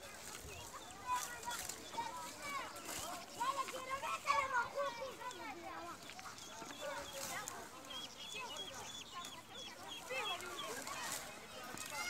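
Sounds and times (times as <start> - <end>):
lower wavering bird calls: 0.1 - 12.0.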